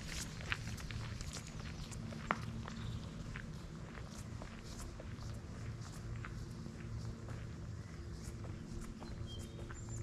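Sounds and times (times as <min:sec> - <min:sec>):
footsteps on dry leaves and gravel: 0:00.0 - 0:10.0.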